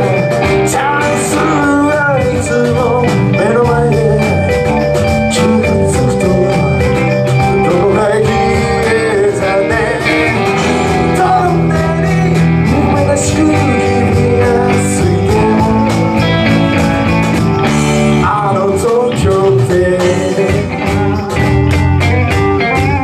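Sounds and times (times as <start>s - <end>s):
person singing lead vocal: 0.0s - 21.8s
live rock band playing: 0.0s - 23.0s.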